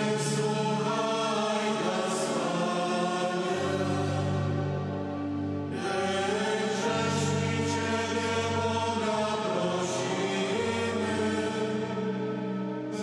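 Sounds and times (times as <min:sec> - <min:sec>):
mixed choir singing a hymn: 0:00.0 - 0:13.0.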